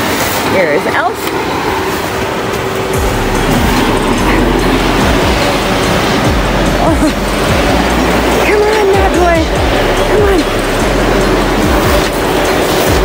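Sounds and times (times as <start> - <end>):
blower fan rushing air: 0.0 - 13.0.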